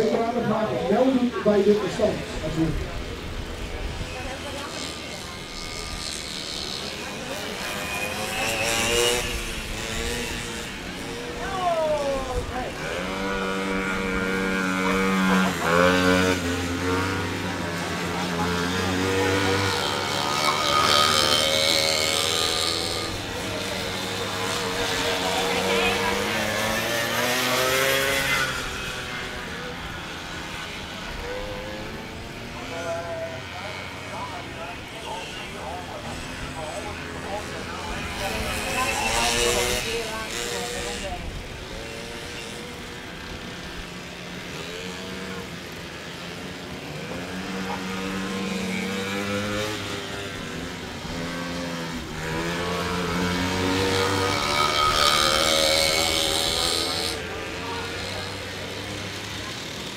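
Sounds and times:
motorcycle engines revving: 0:00.0 - 0:59.9.

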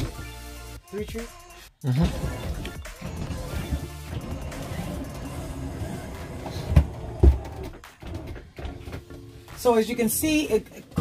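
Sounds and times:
music playing: 0:00.0 - 0:11.0
electric motor droning: 0:03.1 - 0:07.8
thumps: 0:06.2 - 0:09.2.

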